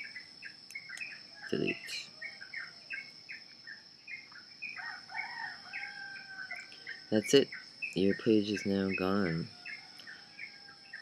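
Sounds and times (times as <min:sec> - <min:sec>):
faint birdsong chirps: 0:00.0 - 0:11.0.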